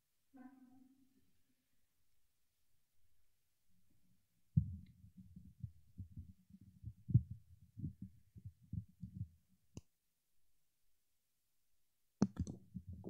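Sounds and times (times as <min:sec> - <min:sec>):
muffled thumps and knocks: 0:04.6 - 0:09.4, 0:12.2 - 0:13.0.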